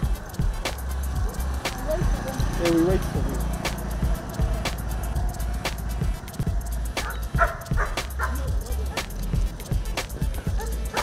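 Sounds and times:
background music with steady beat: 0.0 - 11.0
dog barking: 7.0 - 9.2, 10.4 - 11.0.

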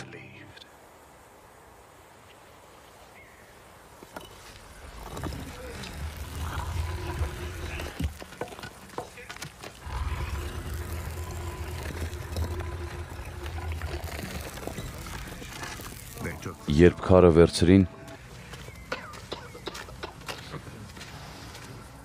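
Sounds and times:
heavy stone grinding rumble: 4.8 - 16.3.

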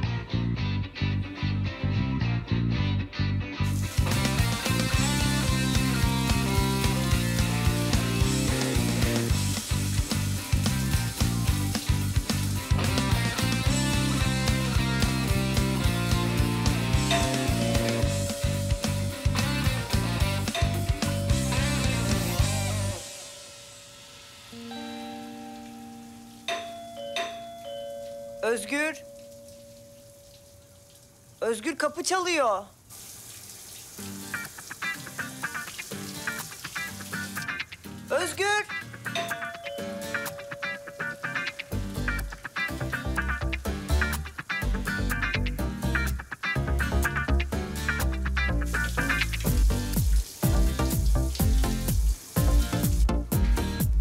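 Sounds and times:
background music with steady beat: 3.8 - 26.6, 38.0 - 54.0
doorbell chiming: 16.9 - 30.6, 39.1 - 42.8.

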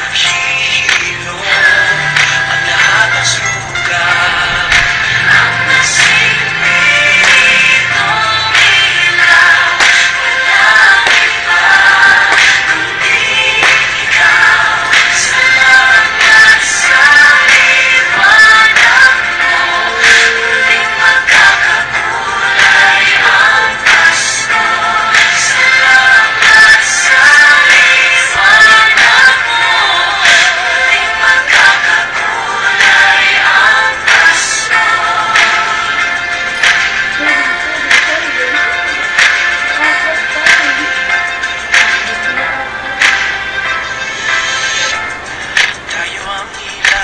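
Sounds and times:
girls singing a christmas song: 0.2 - 38.2
bright percussive beat: 34.1 - 42.4.

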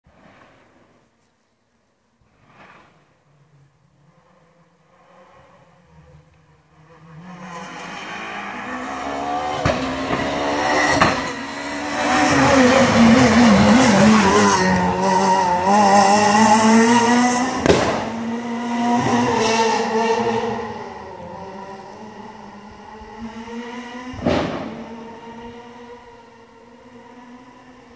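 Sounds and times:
rally car engine passing: 2.5 - 27.9
sharp gunshot-like bangs: 17.6 - 18.2, 24.2 - 24.9.

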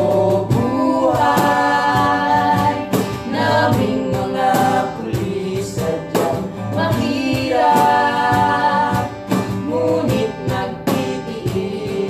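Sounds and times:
acoustic guitar strumming: 0.0 - 12.0
box drum beat: 0.0 - 12.0
group singing: 0.0 - 12.0.

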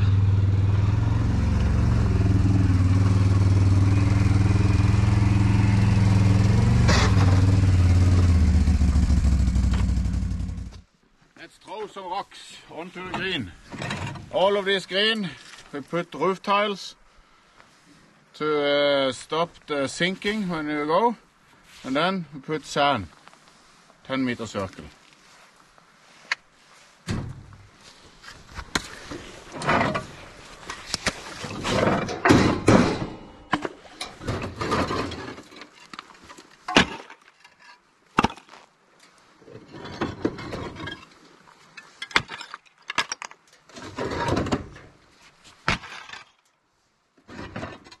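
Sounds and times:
roof tiles scraping and rattling: 29.0 - 33.1, 33.8 - 38.4, 39.4 - 41.1, 41.8 - 45.0, 47.2 - 48.0.

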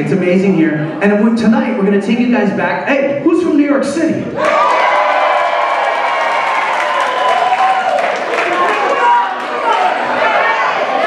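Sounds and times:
applause: 4.4 - 10.0
audience cheering and whooping: 4.4 - 11.0.

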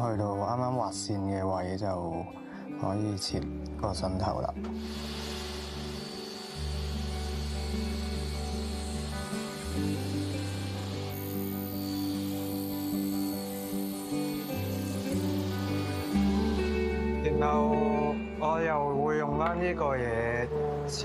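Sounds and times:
low sustained music chords: 0.0 - 21.0.

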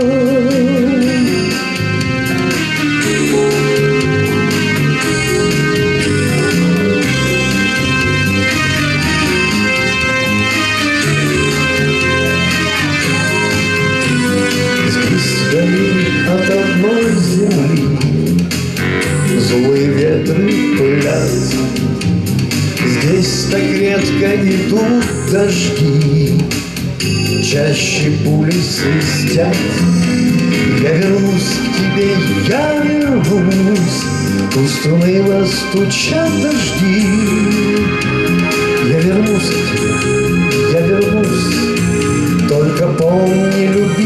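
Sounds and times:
electronic keyboard melody: 0.0 - 44.0
guitar strumming: 0.9 - 18.0.

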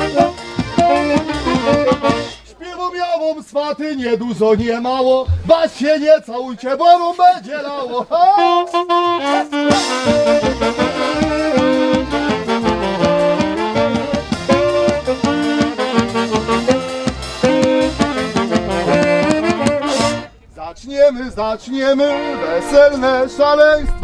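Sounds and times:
bass drum beat: 0.0 - 2.4, 4.5 - 5.8, 9.6 - 20.3
saxophones playing tune: 0.0 - 2.5, 8.3 - 20.4, 22.0 - 23.5
accordion: 0.0 - 2.6, 8.4 - 20.4, 21.9 - 24.0.

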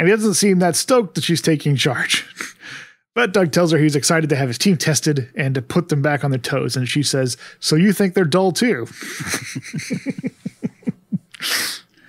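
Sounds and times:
man laughing: 8.9 - 11.8
hissing burst of breath: 11.4 - 12.0.

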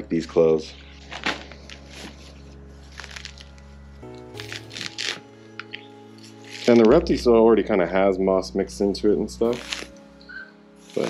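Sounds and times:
quiet background music: 0.0 - 11.0
moss and soil scrunched by hand: 1.0 - 7.4, 9.4 - 9.9, 10.8 - 11.0.

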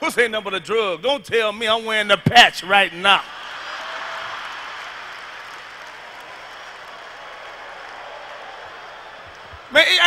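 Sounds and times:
audience applauding and laughing: 3.3 - 9.7.

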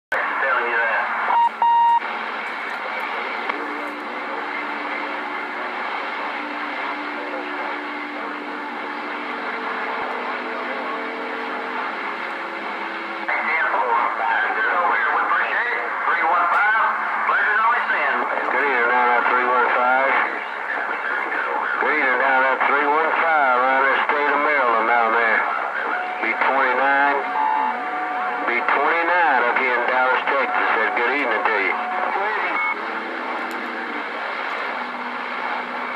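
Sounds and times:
distorted radio voice: 0.1 - 12.3, 13.2 - 35.9
radio hiss and static: 0.1 - 35.9
short beep: 1.4 - 2.0.

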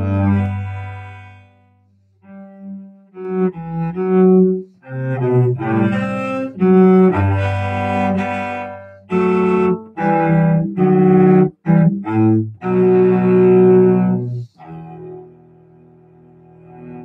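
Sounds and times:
bowed cello: 0.0 - 17.0.

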